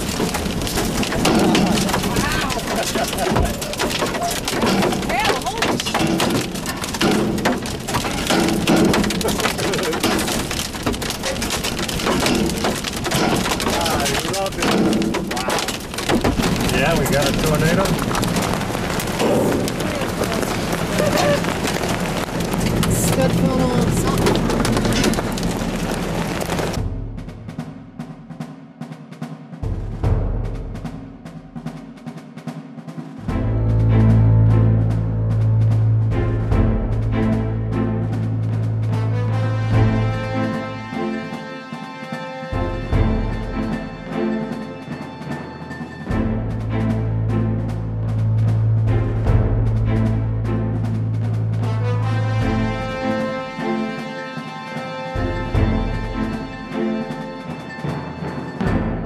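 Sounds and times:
rain and hail pelting vehicle: 0.0 - 27.2, 33.2 - 58.9
low music tones: 33.2 - 59.0.

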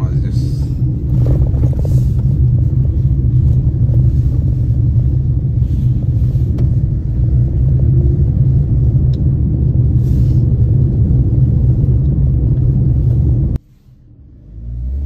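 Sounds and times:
car engine and tyre noise: 0.0 - 15.0.

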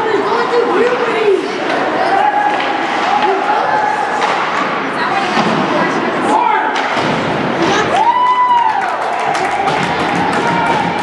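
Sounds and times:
hockey sticks and puck knocking: 4.2 - 5.7, 9.3 - 11.0.

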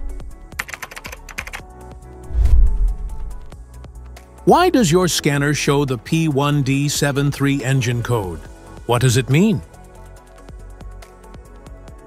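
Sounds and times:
computer keyboard clicks: 0.6 - 1.6
intro music: 2.0 - 3.8
deep bass hit: 2.2 - 3.5.

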